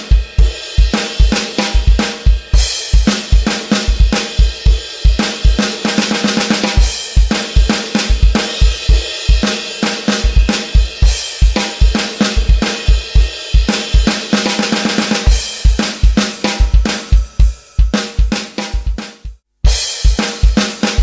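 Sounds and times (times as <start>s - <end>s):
electronic drum kit rock groove: 0.0s - 21.0s.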